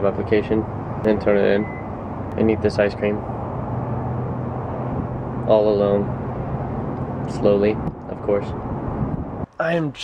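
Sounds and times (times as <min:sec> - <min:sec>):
constant low hum: 0:00.0 - 0:10.0
outdoor background noise: 0:00.0 - 0:10.0.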